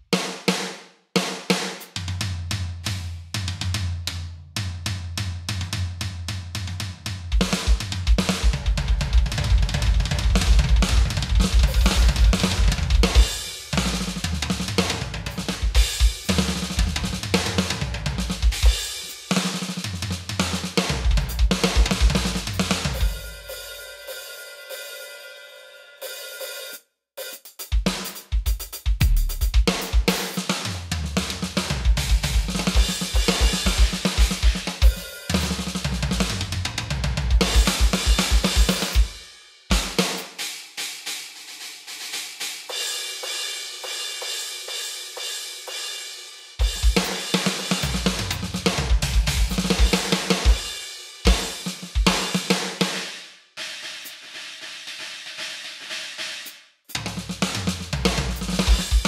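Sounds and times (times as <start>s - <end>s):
electronic drum kit rock groove: 0.0s - 25.1s, 26.0s - 59.0s
cymbal ringing: 11.7s - 13.7s, 23.0s - 26.8s, 34.8s - 35.6s.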